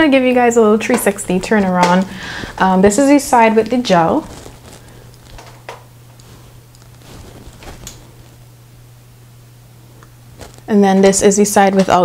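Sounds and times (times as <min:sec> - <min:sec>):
low hum: 0:00.0 - 0:11.2
soft rustles and ticks: 0:03.6 - 0:08.4, 0:10.0 - 0:11.2.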